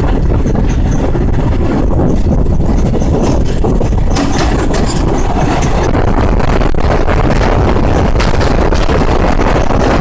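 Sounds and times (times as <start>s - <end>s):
clicks and rattles: 0.0s - 10.0s
train wheels rumbling on rails: 0.0s - 10.0s.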